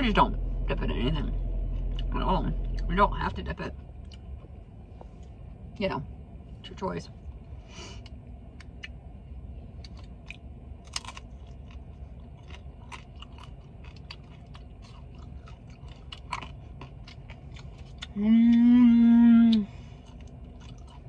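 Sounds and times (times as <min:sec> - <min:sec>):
crunchy chewing: 0:09.7 - 0:18.8, 0:19.5 - 0:21.0.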